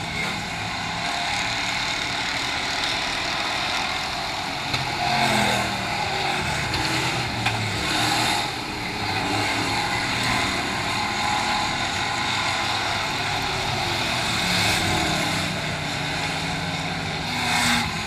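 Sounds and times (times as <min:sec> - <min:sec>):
race car engines droning: 0:00.0 - 0:18.0.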